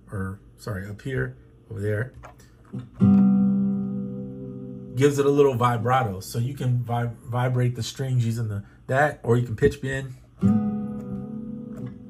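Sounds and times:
acoustic guitar ringing: 2.8s - 6.2s, 10.4s - 12.0s.

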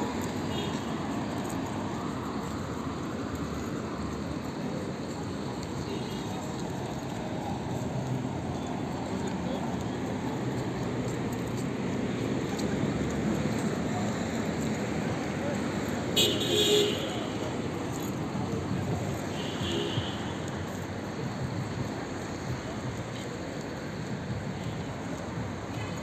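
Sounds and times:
traffic hum: 0.0s - 26.0s.

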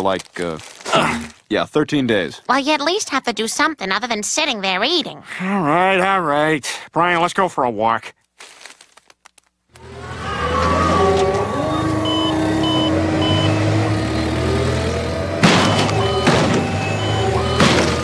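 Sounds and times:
forklift engine humming: 9.8s - 18.0s
reversing alarm beeping: 10.9s - 18.0s
loud thump: 15.4s - 16.8s, 17.4s - 18.0s.

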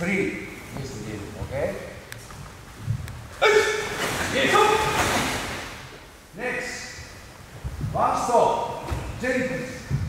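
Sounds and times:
person shouting short calls: 3.4s - 5.1s.

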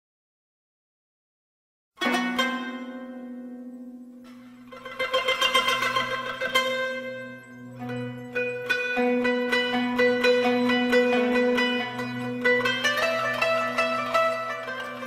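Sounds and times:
plucked string instrument music: 2.0s - 15.0s.

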